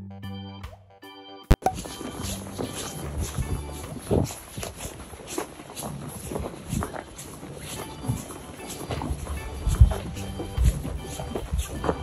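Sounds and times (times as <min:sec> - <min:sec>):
background music: 0:00.0 - 0:12.0
boots walking on snow: 0:01.6 - 0:12.0.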